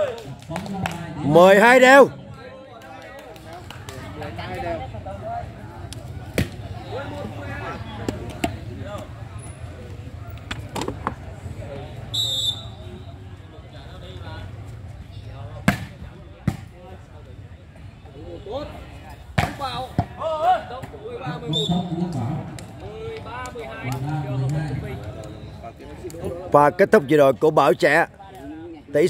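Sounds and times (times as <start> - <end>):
spectators talking and shouting: 0.0 - 29.0.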